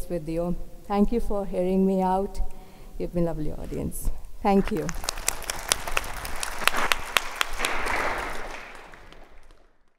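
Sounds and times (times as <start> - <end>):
audience applauding: 4.6 - 9.9.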